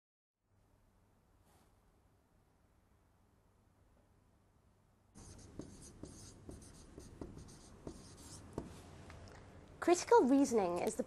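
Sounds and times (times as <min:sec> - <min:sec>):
marker writing on whiteboard: 0:05.2 - 0:08.9.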